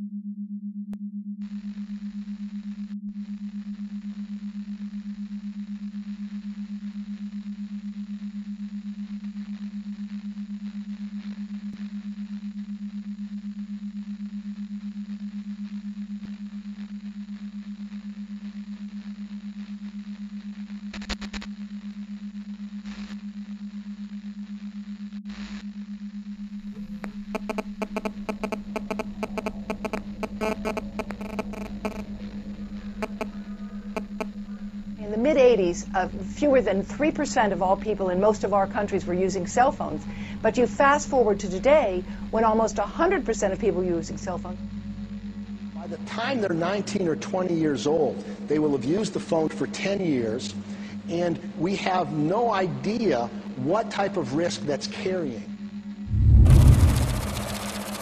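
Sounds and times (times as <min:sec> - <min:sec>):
glitchy static crackling: 0:20.8 - 0:21.6, 0:26.6 - 0:34.4, 0:56.1 - 0:58.0
low hum tone: 0:26.2 - 0:51.6, 0:55.0 - 0:58.0
sharp clicks: 0:27.4 - 0:32.1, 0:33.0 - 0:33.3, 0:34.0 - 0:34.3.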